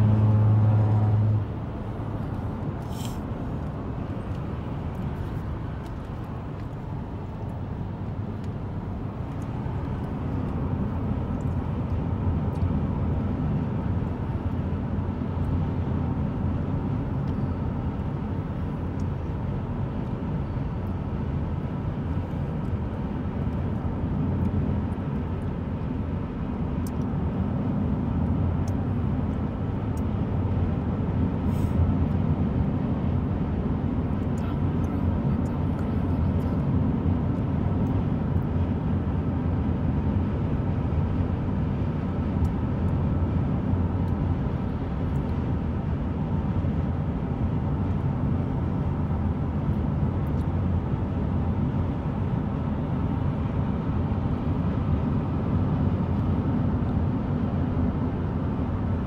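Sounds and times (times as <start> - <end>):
road rumble inside car: 0.0 - 59.0.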